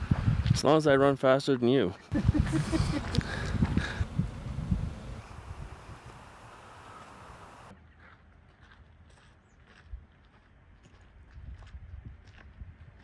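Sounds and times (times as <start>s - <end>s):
outdoor hiss: 2.1s - 7.7s
footsteps on grass: 8.0s - 12.4s.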